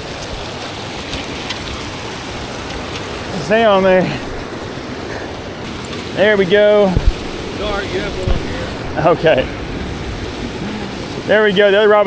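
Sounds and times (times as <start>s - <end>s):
floodwater rushing through spillway: 0.0s - 12.0s.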